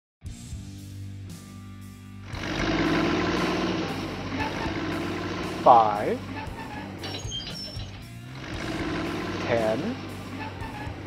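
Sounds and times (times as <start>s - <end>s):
music: 0.2s - 11.0s
truck engine rumbling: 2.2s - 11.0s.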